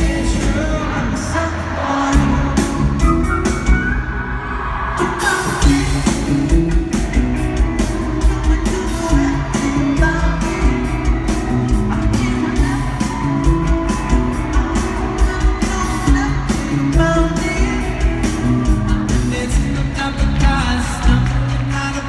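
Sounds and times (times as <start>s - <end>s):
bass guitar: 0.0s - 22.0s
drums: 0.0s - 22.0s
electric guitar: 0.0s - 22.0s
lead vocal: 0.0s - 22.0s.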